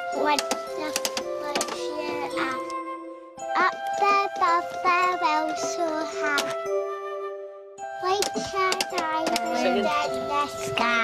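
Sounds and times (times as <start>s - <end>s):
tinkly electronic toy tune: 0.0s - 5.8s, 7.7s - 11.0s.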